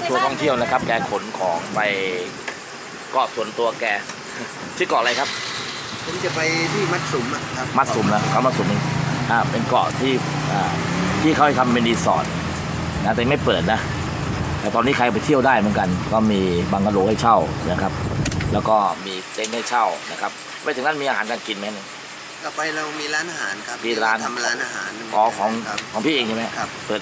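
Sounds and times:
person talking: 0:00.0 - 0:02.4, 0:03.2 - 0:05.3, 0:06.0 - 0:12.3, 0:13.0 - 0:13.9, 0:14.6 - 0:17.9, 0:22.4 - 0:27.0
engine humming: 0:00.0 - 0:19.0, 0:22.2 - 0:27.0.

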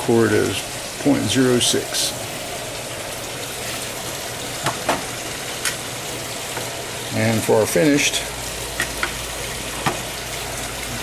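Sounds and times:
person speaking: 0:00.0 - 0:02.3, 0:07.1 - 0:08.4
steady background hiss: 0:00.0 - 0:11.0.

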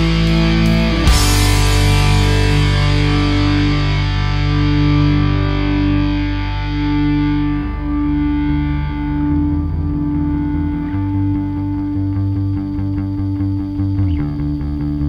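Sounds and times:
distorted electric guitar: 0:00.0 - 0:15.0
low sustained bass: 0:00.0 - 0:15.0.

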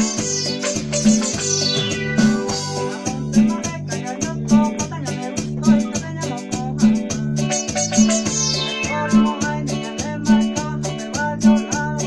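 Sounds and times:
electronic keyboard bass line: 0:00.0 - 0:12.0.

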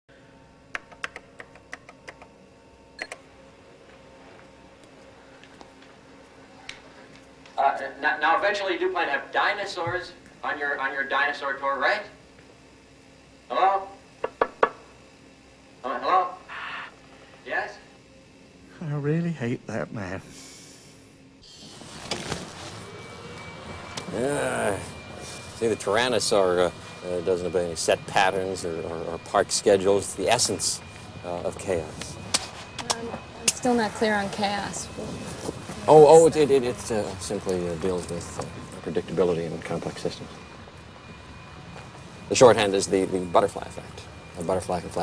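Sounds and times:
faint steady hum: 0:00.1 - 0:45.0.

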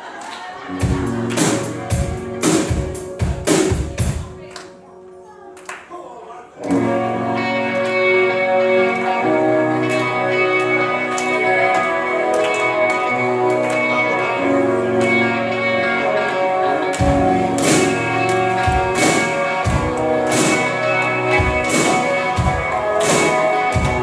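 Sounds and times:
live rock band hits: 0:00.7 - 0:04.4, 0:06.7 - 0:24.0
electric guitar sustained chords: 0:06.6 - 0:24.0.

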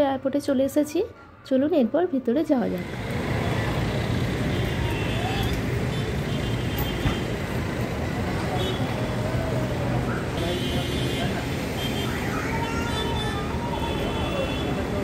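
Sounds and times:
traffic noise: 0:00.0 - 0:15.0
crowd voices: 0:07.6 - 0:15.0.

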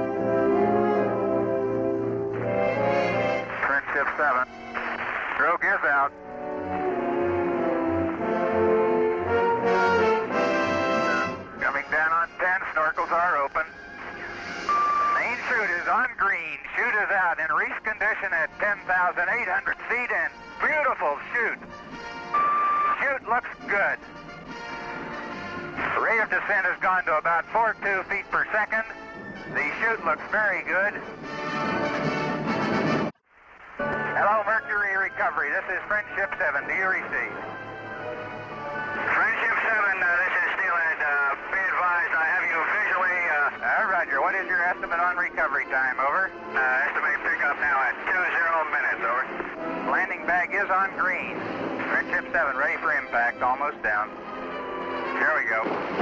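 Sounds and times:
dramatic orchestral music with brass: 0:00.0 - 0:03.6, 0:06.1 - 0:12.0, 0:21.6 - 0:22.7, 0:24.0 - 0:25.9, 0:28.8 - 0:33.2, 0:37.2 - 0:39.3
short steady beeps: 0:14.7 - 0:15.2.

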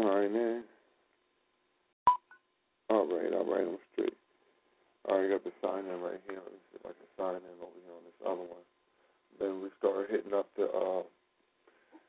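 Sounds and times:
telephone beep: 0:02.1 - 0:02.4.

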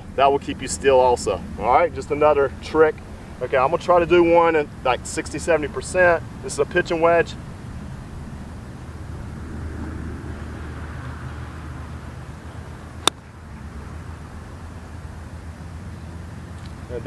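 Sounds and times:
low outdoor rumble: 0:00.0 - 0:17.0
golf club striking ball: 0:13.0 - 0:13.3.

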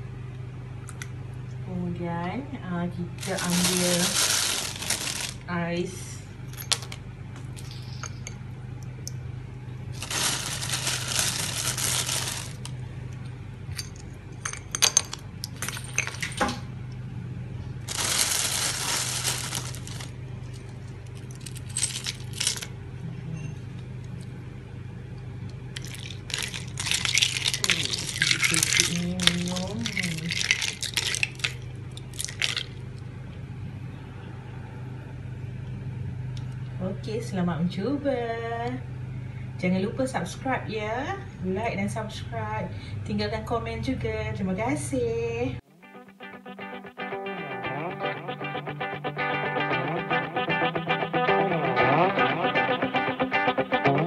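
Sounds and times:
steady low hum: 0:00.0 - 0:45.7
ice cubes clinking against a cup: 0:03.2 - 0:05.4, 0:17.9 - 0:20.1, 0:21.3 - 0:22.7, 0:25.8 - 0:32.7.

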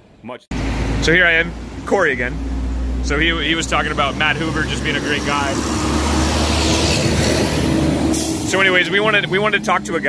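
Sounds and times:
vehicle engine rumble: 0:00.5 - 0:10.0.

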